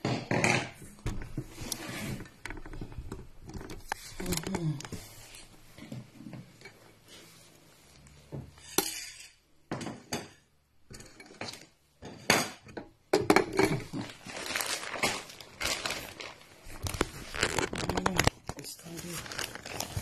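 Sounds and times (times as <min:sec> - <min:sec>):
dishes and cutlery clinking: 0:08.6 - 0:14.0.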